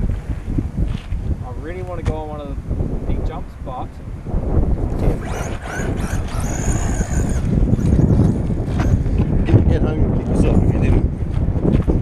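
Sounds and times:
wind noise on microphone: 0:00.0 - 0:12.0
rc truck motor whining: 0:04.9 - 0:09.2.

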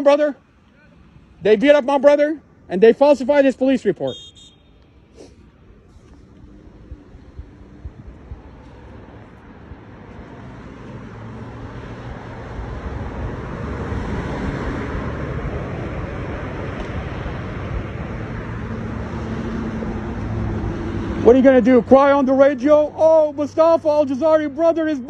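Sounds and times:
cars passing: 0:00.0 - 0:25.0.

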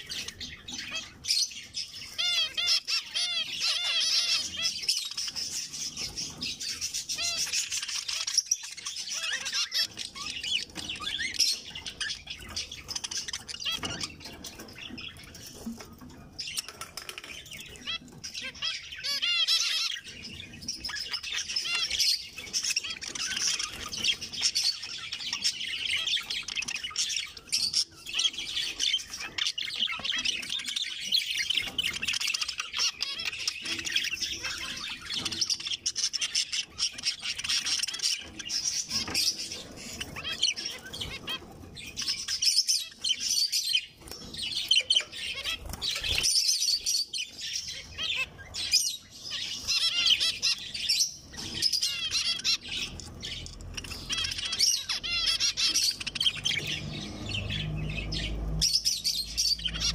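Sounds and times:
finches chirping: 0:00.0 - 0:59.9.

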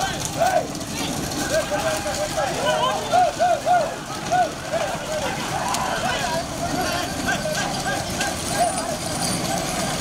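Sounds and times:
men shouting calls: 0:00.0 - 0:09.8
tractor engine rumble: 0:00.0 - 0:10.0.

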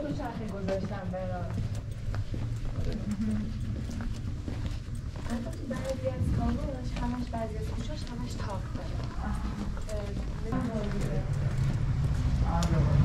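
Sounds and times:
people talking quietly: 0:00.0 - 0:11.8
footsteps on stone paving: 0:00.0 - 0:12.8.

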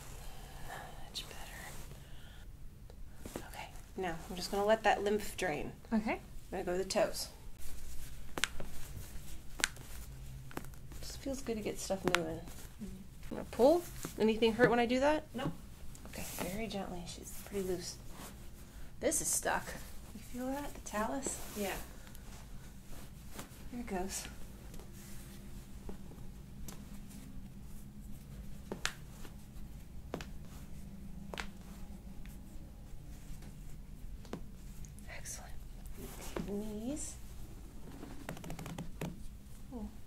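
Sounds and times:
soft rustling: 0:00.0 - 0:02.4, 0:03.1 - 0:40.0
faint steady hum: 0:00.0 - 0:40.0.

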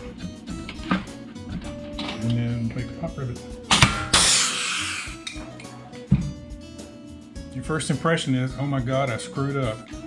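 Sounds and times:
rivet gun firing with hiss: 0:03.7 - 0:05.2.

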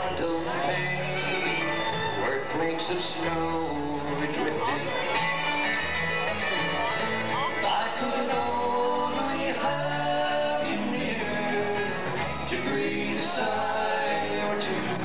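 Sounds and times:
bluegrass band playing: 0:00.0 - 0:15.0.

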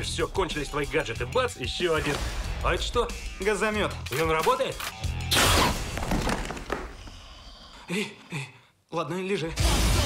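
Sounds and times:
trailer music: 0:00.0 - 0:06.0.

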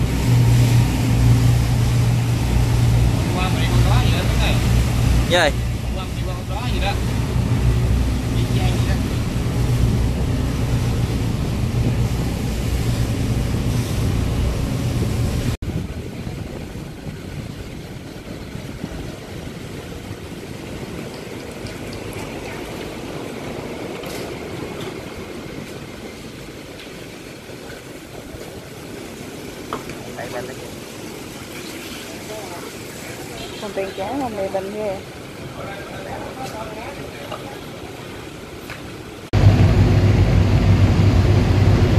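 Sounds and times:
boat engine drone: 0:00.0 - 0:41.9
rushing wind and water: 0:00.0 - 0:41.9.

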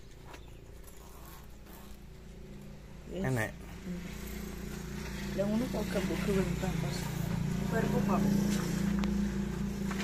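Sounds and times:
low engine drone: 0:03.8 - 0:10.0.

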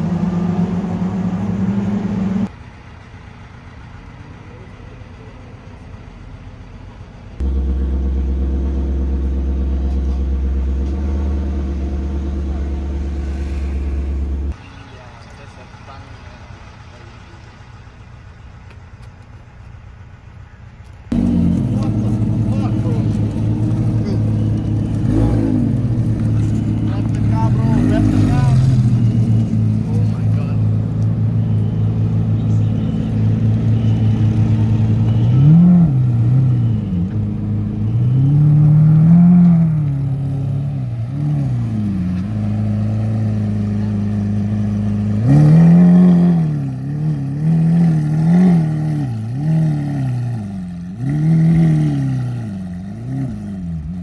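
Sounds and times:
car engines idling: 0:00.0 - 0:54.0
car engine throttle blips: 0:07.4 - 0:54.0.

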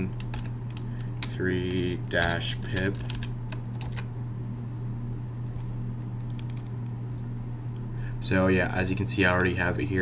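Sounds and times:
computer keyboard keystrokes: 0:00.0 - 0:04.1, 0:06.3 - 0:06.7
steady low hum: 0:00.0 - 0:10.0.

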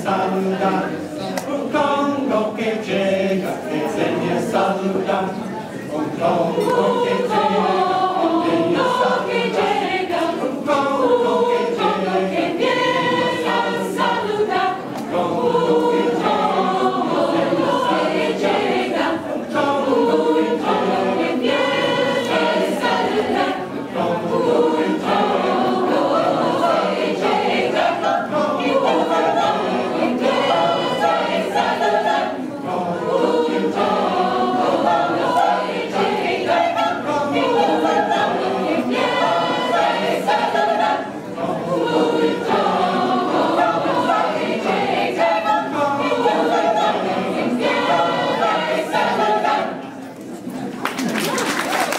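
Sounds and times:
mixed choir singing: 0:00.0 - 0:51.9.

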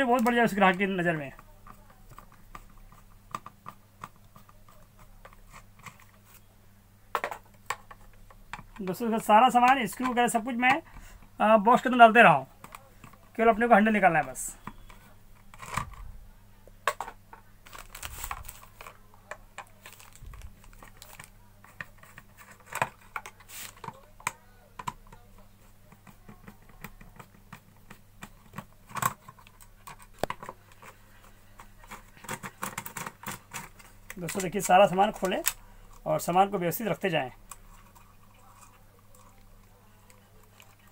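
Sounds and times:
screwdriver tapping plastic: 0:01.3 - 0:04.5
plastic bag crinkling: 0:17.6 - 0:19.0, 0:19.7 - 0:21.3.

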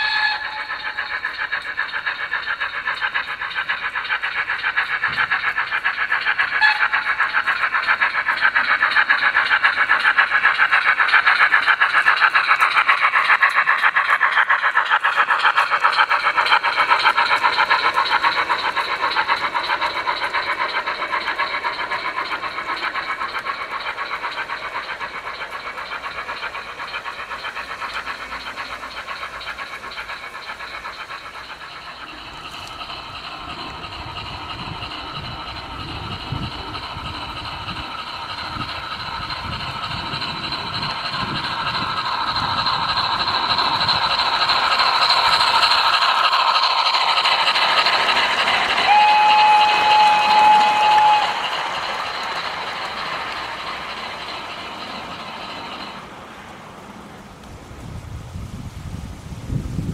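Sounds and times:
model train whistle: 0:00.0 - 0:00.8, 0:06.6 - 0:06.9, 0:48.8 - 0:51.5
model steam locomotive chuffing: 0:00.0 - 0:59.9
model wheels rumbling on track: 0:00.0 - 0:59.9.

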